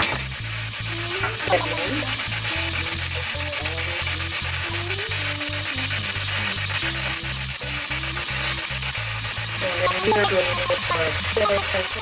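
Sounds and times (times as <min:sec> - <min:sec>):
music with deep bass and beat: 0:00.0 - 0:12.0
onions sizzling in a pan: 0:00.0 - 0:12.0.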